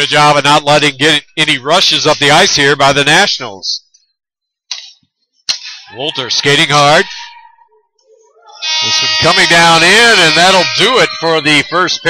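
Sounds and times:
sharp microphone click: 0:04.7 - 0:05.8
person speaking: 0:08.5 - 0:12.0.

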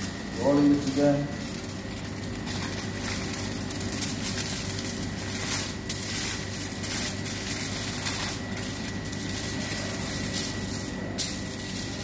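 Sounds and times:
aluminium foil crinkling: 0:00.0 - 0:12.0
machine hum with high whine: 0:00.0 - 0:12.0.

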